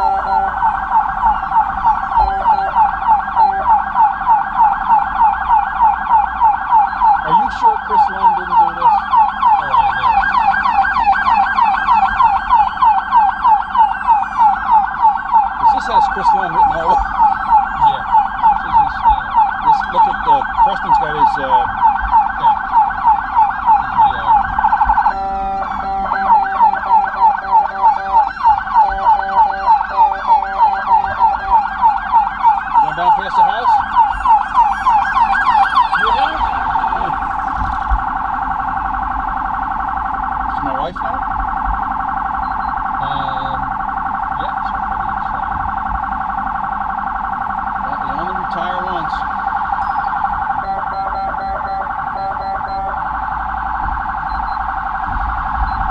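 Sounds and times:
distant sirens: 0.0s - 55.9s
police siren yelping: 0.0s - 55.9s
stuttering pulsed siren tone: 0.0s - 55.9s.

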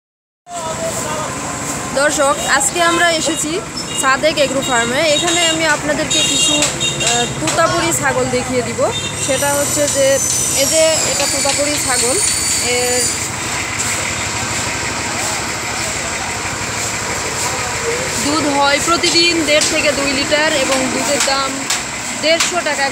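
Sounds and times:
outdoor background noise: 0.5s - 22.9s
engine idling: 0.6s - 22.9s.

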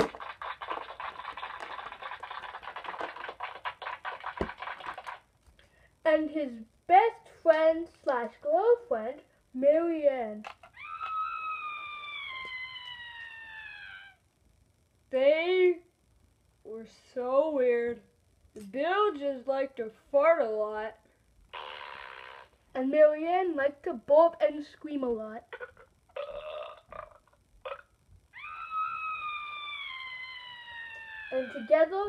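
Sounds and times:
person screaming high-pitched: 10.7s - 14.2s, 28.4s - 32.0s
person burping: 25.5s - 28.0s.

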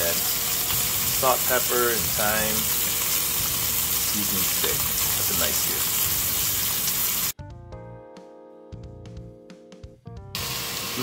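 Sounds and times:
meat sizzling in a pot: 0.0s - 7.4s, 10.4s - 11.0s
soft music with held notes: 7.4s - 11.0s.

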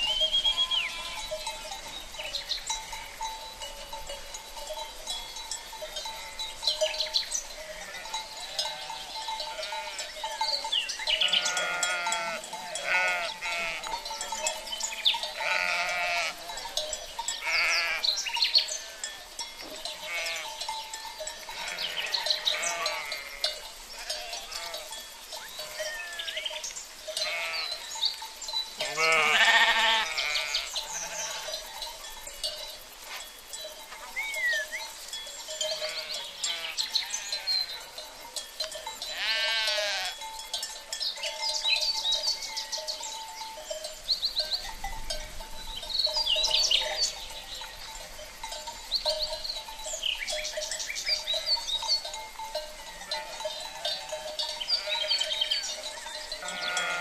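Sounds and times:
flock bleating: 11.3s - 13.9s, 15.4s - 16.4s, 20.0s - 20.5s, 28.8s - 31.5s, 39.1s - 40.2s, 56.4s - 57.0s.

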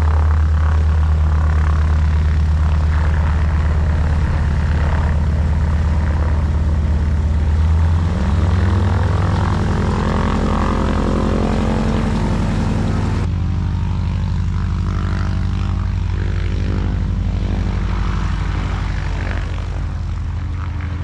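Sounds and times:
propeller aircraft engine running: 0.0s - 21.0s.

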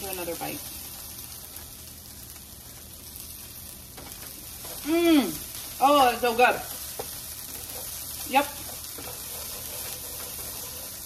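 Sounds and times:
rice sizzling in a frying pan: 0.0s - 11.0s
wooden spatula scraping pan: 6.9s - 11.0s.

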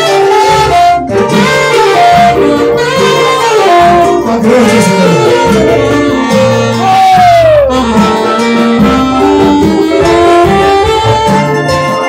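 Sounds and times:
saxophone melody: 0.0s - 12.0s.

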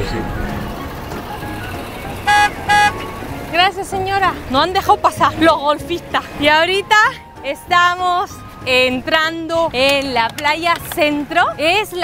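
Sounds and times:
street traffic noise: 0.0s - 12.0s
electric horn short beeps: 2.2s - 3.1s.

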